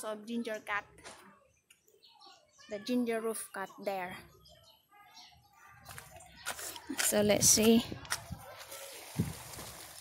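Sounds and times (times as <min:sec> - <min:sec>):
rustling plastic sheet: 0:08.4 - 0:10.0.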